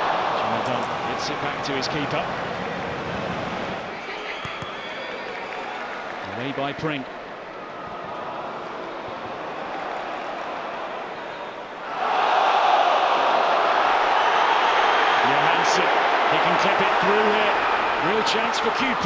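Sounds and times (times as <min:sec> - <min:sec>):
stadium crowd noise: 0:00.0 - 0:19.0.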